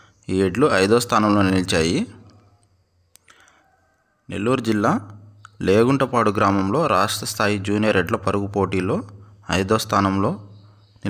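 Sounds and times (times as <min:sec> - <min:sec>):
person speaking: 0:00.3 - 0:02.4, 0:04.3 - 0:10.5.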